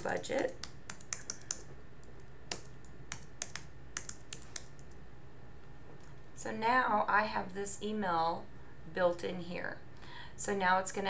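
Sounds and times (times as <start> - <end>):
keyboard typing: 0.0 - 5.0.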